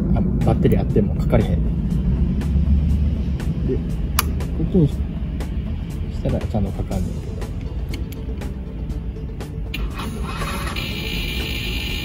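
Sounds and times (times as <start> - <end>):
background music: 0.0 - 12.0
starter motor high buzz: 9.7 - 12.0.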